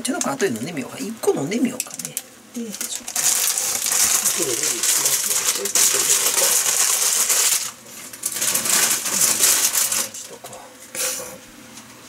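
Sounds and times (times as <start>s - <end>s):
plastic packaging crinkling: 1.8s - 10.4s.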